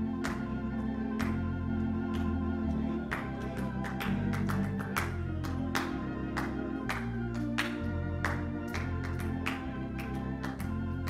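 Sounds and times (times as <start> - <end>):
gospel organ music: 0.0 - 11.0.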